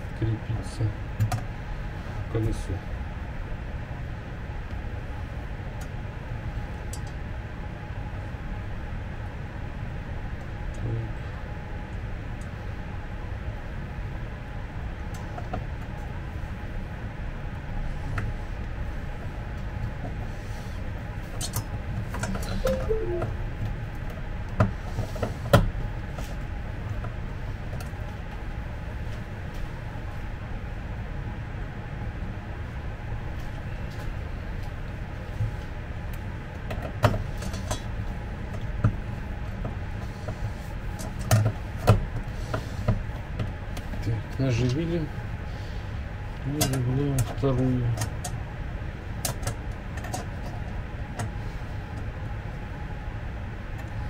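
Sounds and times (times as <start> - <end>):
low room hum: 0.0 - 54.0.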